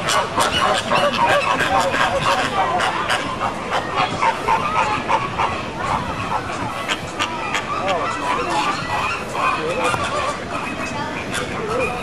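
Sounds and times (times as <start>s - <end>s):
flamingos honking: 0.0s - 12.0s.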